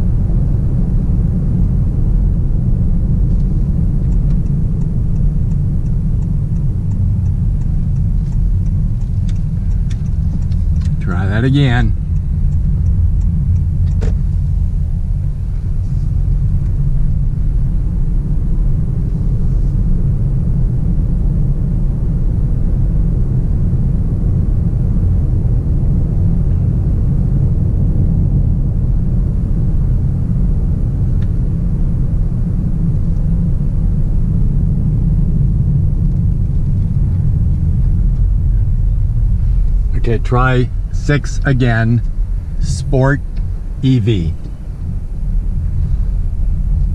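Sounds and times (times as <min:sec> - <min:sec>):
road and tyre rumble in car: 0:00.0 - 0:46.9.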